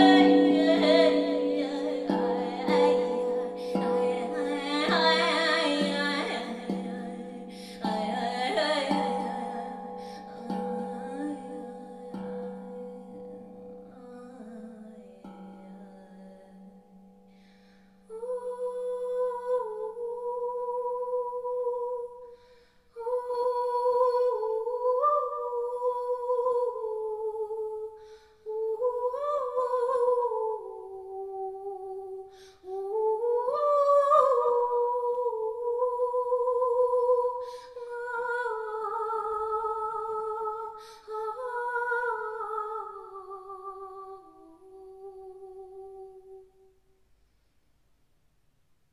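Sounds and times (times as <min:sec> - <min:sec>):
woman humming: 0:00.0 - 0:13.3
woman breathing: 0:07.5 - 0:07.9.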